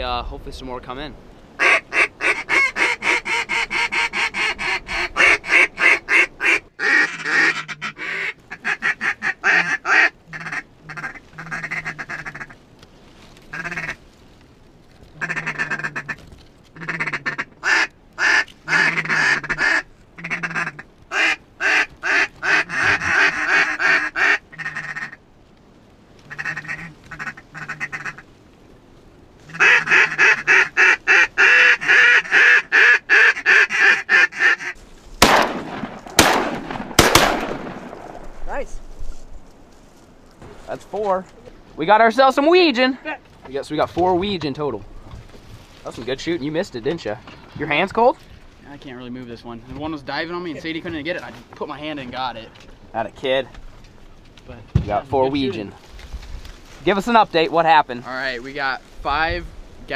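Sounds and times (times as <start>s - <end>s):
duck quacking: 1.6s - 12.6s, 13.5s - 14.0s, 15.2s - 25.2s, 26.3s - 28.2s, 29.5s - 34.8s
goose honking: 1.6s - 12.6s, 13.5s - 14.0s, 15.2s - 25.2s, 26.3s - 28.3s, 29.4s - 34.8s.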